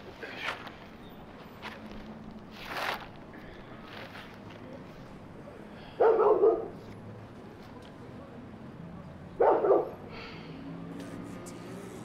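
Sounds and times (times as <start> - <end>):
dog barking: 6.0 - 6.8, 9.4 - 10.0.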